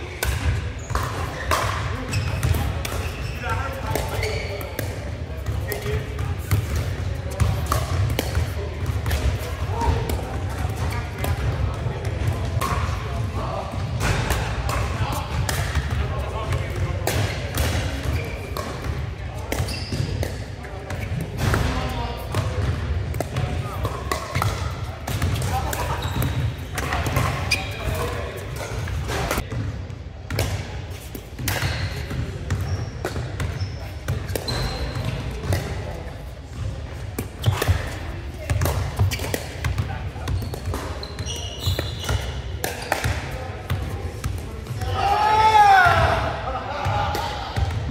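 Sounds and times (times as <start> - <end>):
background chatter: 0.0 - 47.9.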